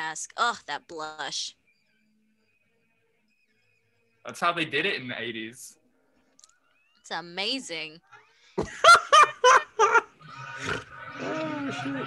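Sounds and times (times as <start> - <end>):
person laughing: 8.6 - 10.1.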